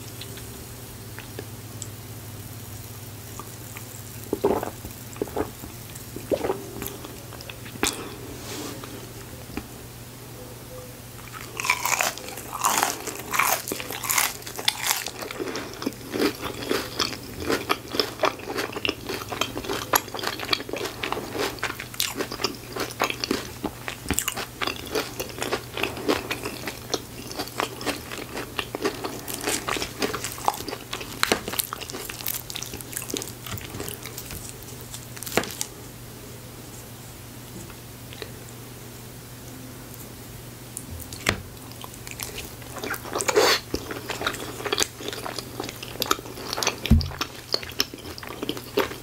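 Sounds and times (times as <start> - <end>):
crunchy chewing: 11.2 - 35.8, 40.8 - 49.0
bites into crunchy onion ring: 11.4 - 35.7.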